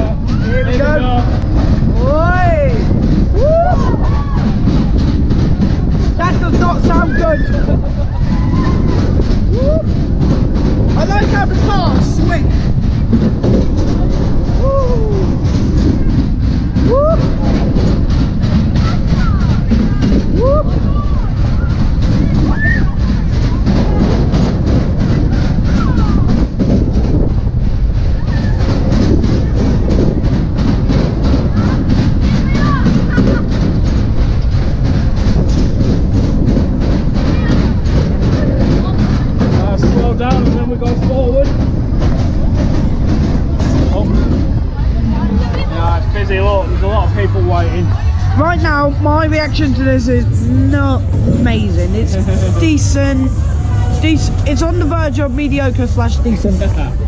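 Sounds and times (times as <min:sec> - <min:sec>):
riders whooping: 0:00.0 - 0:05.9, 0:06.8 - 0:10.6, 0:13.7 - 0:30.2
ride cars clattering on track: 0:00.0 - 0:57.0
ride low rumble: 0:00.0 - 0:57.0.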